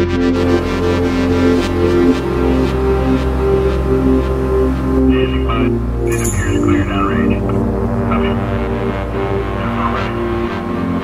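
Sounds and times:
deep steady drone: 0.0s - 11.0s
sustained synth tones: 0.4s - 11.0s
man's voice: 5.1s - 10.6s.

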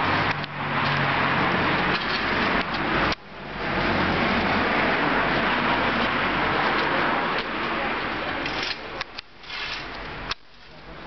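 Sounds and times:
cars passing on road: 0.0s - 11.0s.

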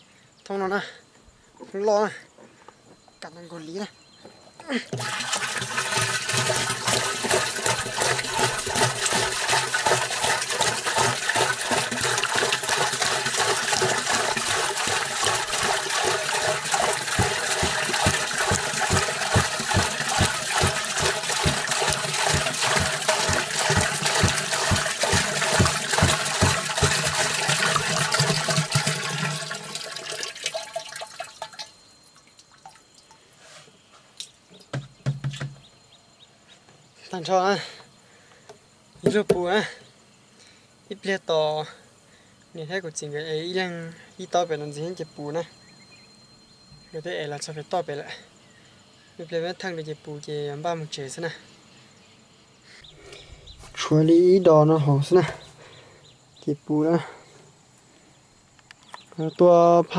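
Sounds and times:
water glugging: 4.7s - 33.2s
water pouring into plastic drum: 4.9s - 33.1s.

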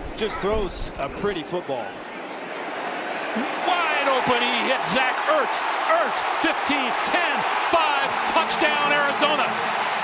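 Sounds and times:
stadium crowd roar: 1.4s - 10.0s
commentator speaking: 3.6s - 9.6s.

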